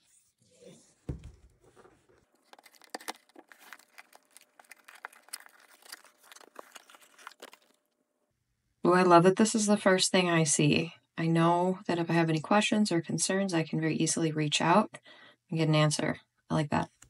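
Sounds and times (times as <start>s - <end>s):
cardboard box thump: 1.1s - 1.9s
cardboard tearing and rustling: 1.6s - 7.8s.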